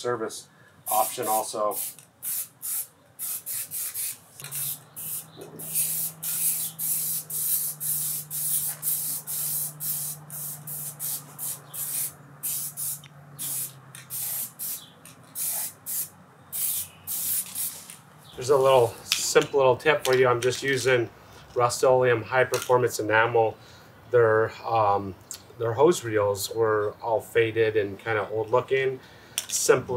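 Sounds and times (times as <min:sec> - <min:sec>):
aerosol can spraying bursts: 0:00.9 - 0:18.0.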